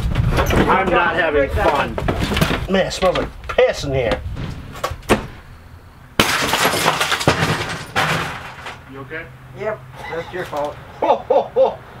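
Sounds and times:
glass breaking crash: 0:06.2 - 0:08.8
glass pieces clattering: 0:06.2 - 0:08.8.

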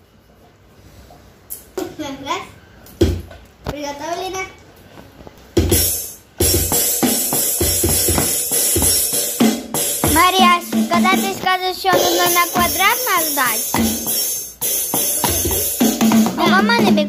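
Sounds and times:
child's voice: 0:01.8 - 0:02.6, 0:03.7 - 0:04.6, 0:10.0 - 0:13.7, 0:16.3 - 0:17.0
electronic drum beat: 0:05.6 - 0:17.0.

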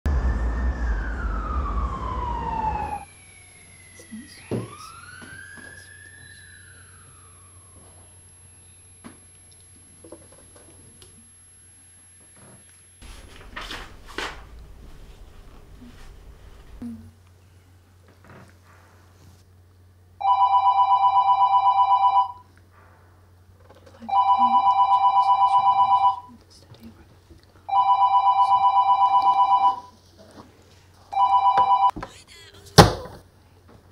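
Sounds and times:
low rumble: 0:00.0 - 0:03.0
emergency siren wailing: 0:00.0 - 0:09.1
fainter siren wail: 0:00.1 - 0:09.4, 0:24.0 - 0:26.4, 0:27.7 - 0:30.0
telephone ringing with warbling trill: 0:20.2 - 0:22.4, 0:24.1 - 0:26.3, 0:27.7 - 0:30.0, 0:31.2 - 0:31.9
thump: 0:32.8 - 0:33.2.

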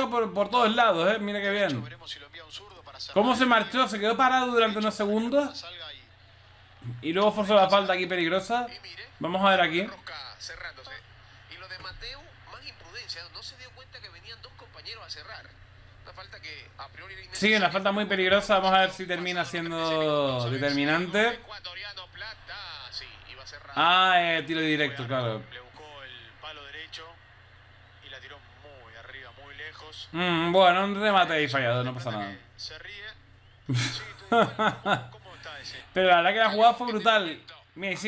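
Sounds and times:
commentator talking: 0:00.0 - 0:06.0, 0:06.8 - 0:15.5, 0:16.1 - 0:27.1, 0:34.0 - 0:38.0
low steady hum: 0:00.0 - 0:38.0.

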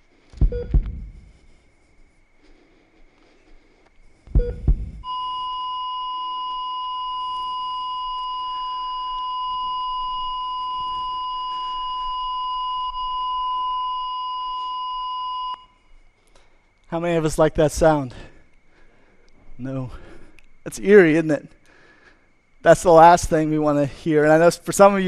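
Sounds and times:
low thump: 0:00.4 - 0:01.2, 0:04.3 - 0:05.1
flatline tone: 0:00.4 - 0:02.8, 0:04.0 - 0:16.0
short beep: 0:04.4 - 0:15.8.

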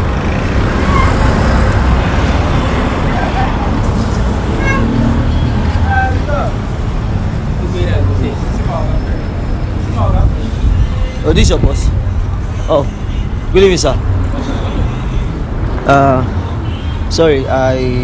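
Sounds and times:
street traffic rumble: 0:00.0 - 0:18.0.

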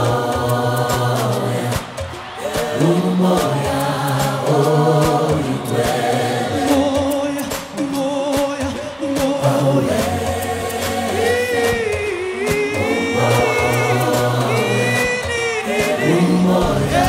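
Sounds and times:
choir singing held notes: 0:00.0 - 0:17.0
lead singer: 0:00.0 - 0:17.0
regular drum beats: 0:00.0 - 0:17.0
band playing: 0:04.6 - 0:17.0.

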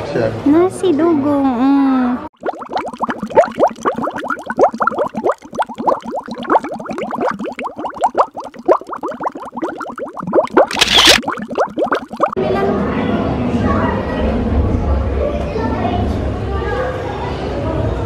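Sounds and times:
falling bloop tones: 0:02.4 - 0:12.4.

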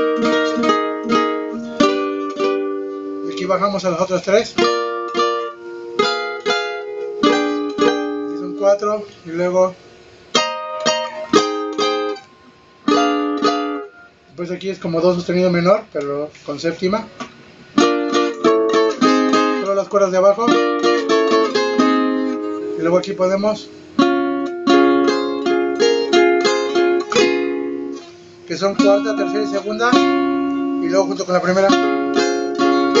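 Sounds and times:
guitar plucked chords: 0:00.0 - 0:16.0, 0:16.9 - 0:33.0.

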